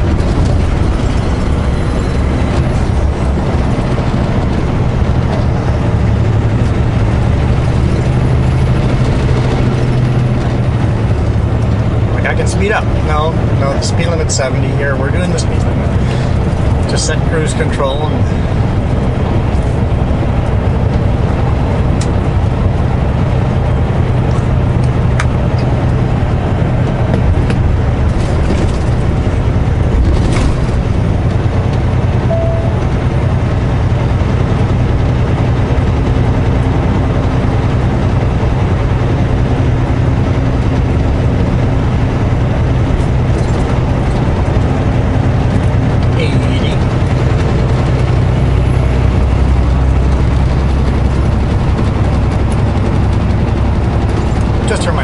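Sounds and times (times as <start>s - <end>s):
diesel truck engine cruising: 0.0s - 55.0s
tyre and road noise: 0.0s - 55.0s.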